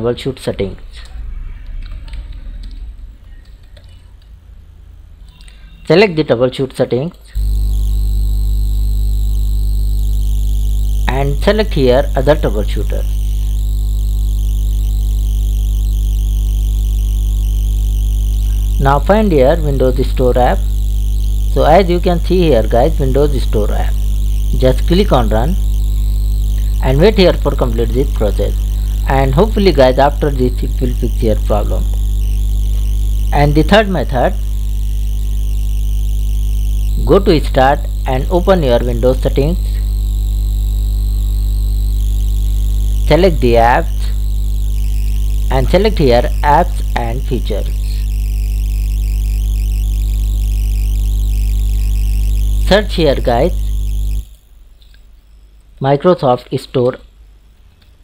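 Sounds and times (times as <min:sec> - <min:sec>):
narration: 0:00.0 - 0:04.1, 0:05.3 - 0:07.7, 0:10.8 - 0:13.7, 0:18.6 - 0:20.8, 0:21.5 - 0:35.7, 0:36.8 - 0:40.0, 0:43.0 - 0:44.4, 0:45.4 - 0:48.2, 0:52.5 - 0:53.8, 0:55.8 - 0:57.1
steady low hum: 0:00.0 - 0:56.2.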